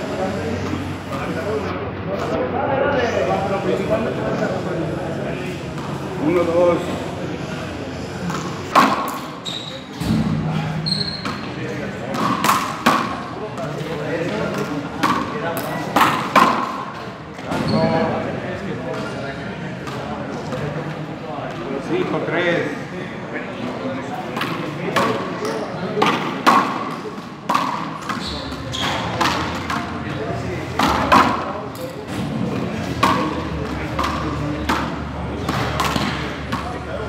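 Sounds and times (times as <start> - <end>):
ball hits echoing in court: 8.2 - 9.4, 11.2 - 13.7, 26.0 - 30.0, 30.8 - 36.8.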